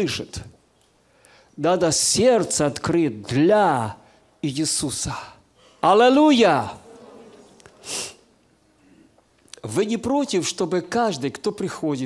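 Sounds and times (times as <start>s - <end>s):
man's quick breath into microphone: 1.0s - 1.6s.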